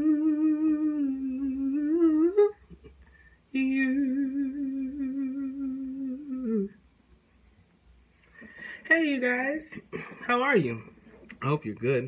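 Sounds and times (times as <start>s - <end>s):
man humming a held note: 0.0s - 2.6s, 3.7s - 6.8s.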